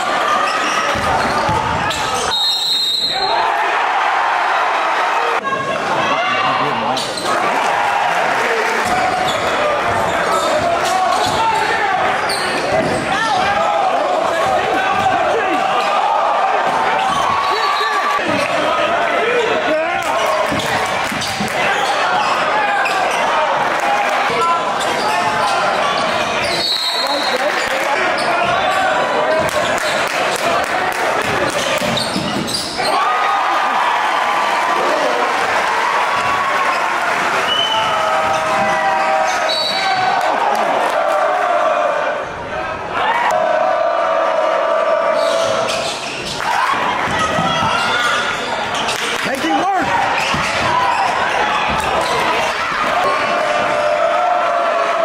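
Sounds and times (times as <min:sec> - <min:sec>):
crowd chatter: 0:00.0 - 0:55.0.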